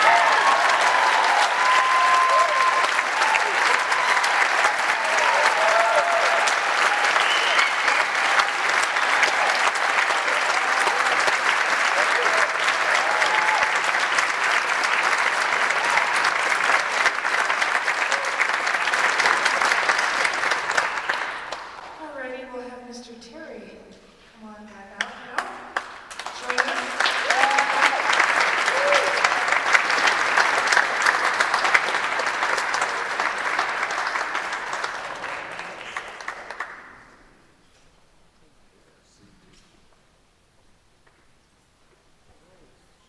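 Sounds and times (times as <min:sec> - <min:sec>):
cheers and calls: 0:00.0 - 0:21.1, 0:26.4 - 0:30.6
audience applauding: 0:00.0 - 0:22.0, 0:25.1 - 0:37.4.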